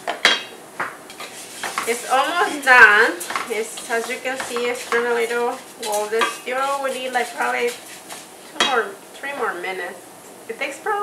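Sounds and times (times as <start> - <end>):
rice toasting in oil: 0.0 - 10.1
wooden spoon scraping a pot: 1.1 - 9.6.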